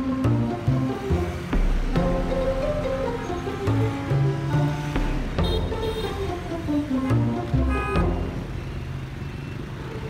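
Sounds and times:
cars and motorbikes passing: 0.0s - 10.0s.

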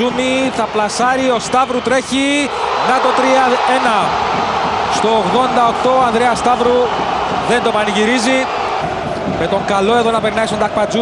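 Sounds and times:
man commentating: 0.0s - 4.2s, 4.9s - 8.5s
stadium crowd noise: 0.0s - 11.0s.

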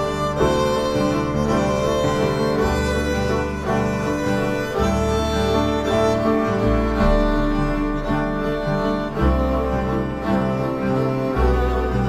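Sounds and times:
cello low bowed notes: 0.0s - 12.0s
violin: 0.0s - 12.0s.

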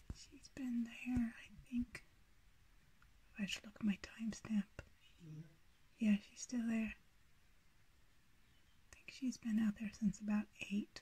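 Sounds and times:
hushed speech: 4.3s - 7.0s.

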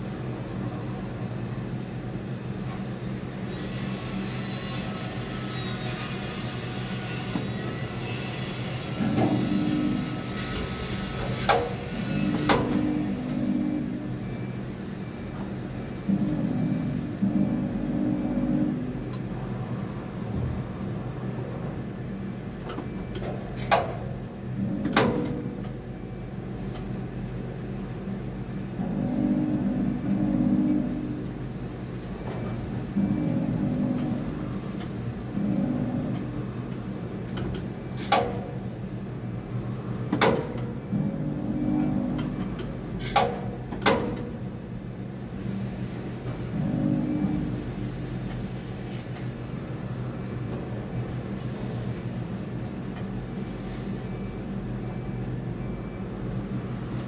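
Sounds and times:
crane mechanical hum: 0.0s - 57.0s.

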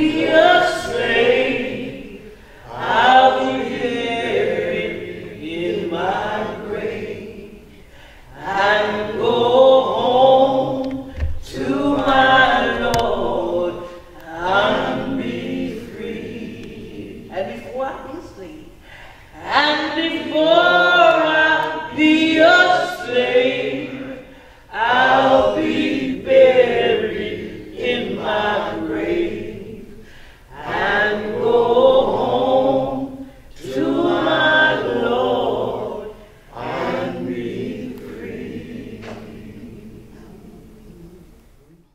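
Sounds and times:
voices singing together: 0.0s - 17.4s, 18.8s - 41.9s.

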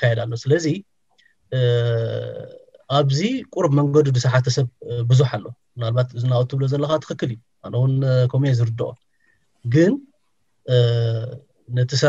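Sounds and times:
person speaking: 0.0s - 0.8s, 1.5s - 9.0s, 9.6s - 10.1s, 10.7s - 12.0s.

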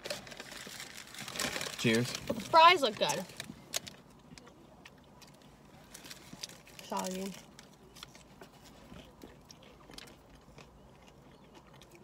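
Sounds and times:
clicks and rustles of eating fries: 0.0s - 12.0s.

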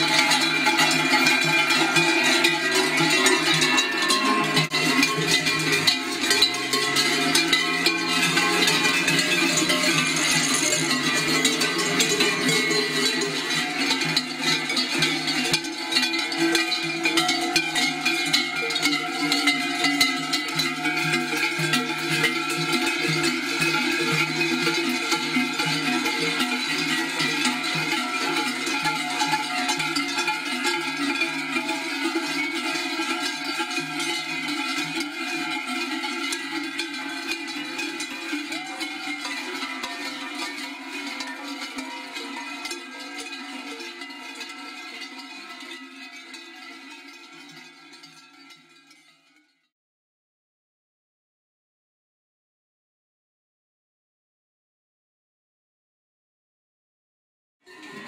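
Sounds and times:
many cowbells clanging: 0.0s - 49.7s, 57.6s - 58.0s.

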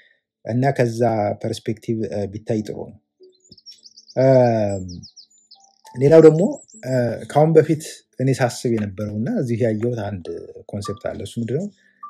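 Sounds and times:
small bird chirping: 3.2s - 7.4s.

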